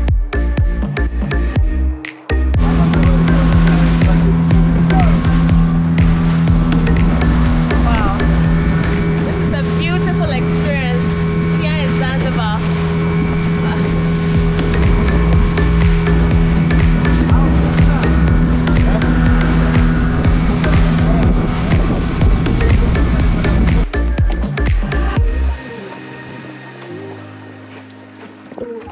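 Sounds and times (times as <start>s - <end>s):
background music: 0.0s - 28.9s
motorboat engine droning: 0.0s - 28.9s.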